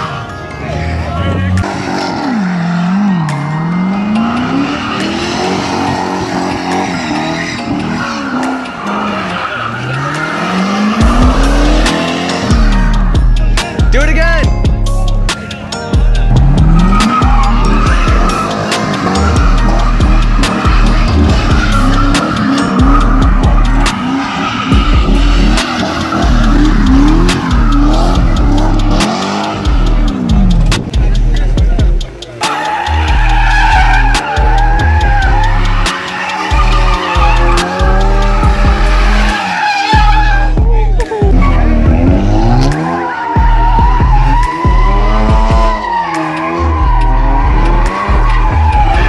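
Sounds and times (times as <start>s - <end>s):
tyres squealing and skidding: 0.0s - 13.7s, 15.3s - 49.0s
car engine revving: 0.0s - 49.0s
music with heavy bass beat: 0.0s - 49.0s
car spinning tyres: 1.6s - 13.2s, 16.2s - 31.5s, 32.3s - 49.0s.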